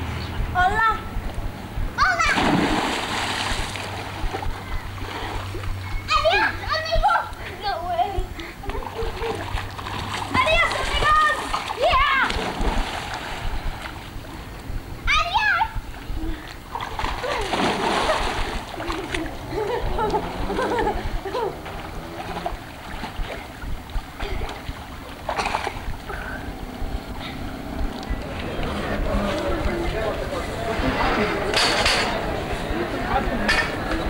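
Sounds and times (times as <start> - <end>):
voices: 0.0 - 3.0, 3.7 - 12.6, 14.1 - 24.6, 25.4 - 34.0
child shouting: 2.0 - 2.4, 6.1 - 7.8, 10.3 - 12.4, 15.1 - 15.8
water splashing in a pool: 2.0 - 14.5, 15.1 - 31.7
splash into swimming pool: 2.2 - 3.9, 16.9 - 19.2.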